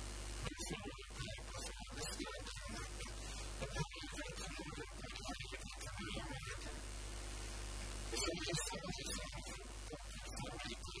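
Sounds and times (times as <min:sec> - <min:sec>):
man talking into a microphone: 0:00.4 - 0:06.8, 0:08.1 - 0:11.0.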